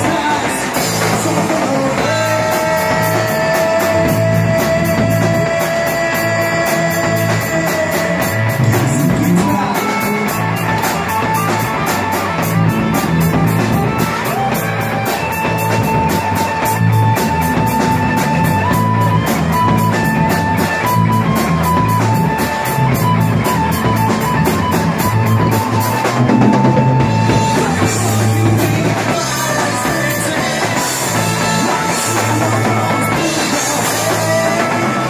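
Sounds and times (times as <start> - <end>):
bass line: 0.0 - 35.0
lead melody: 0.0 - 35.0.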